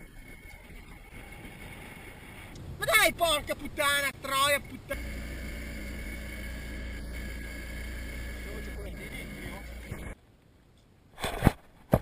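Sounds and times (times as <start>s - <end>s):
boat motor droning: 0.0s - 2.8s, 4.2s - 10.2s.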